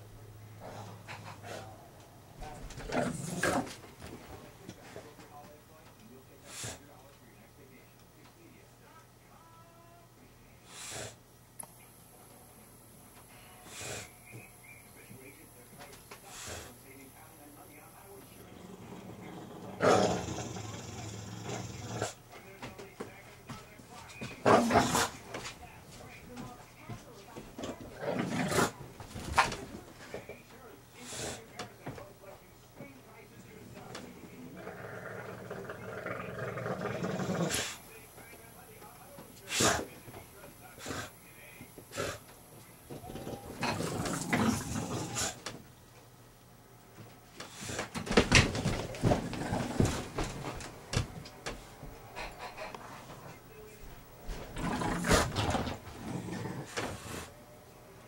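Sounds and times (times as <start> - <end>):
dog barking and growling: 2.6 - 3.9, 18.4 - 22.2, 24.4 - 25.2, 34.3 - 37.8, 43.1 - 45.4, 54.3 - 57.3.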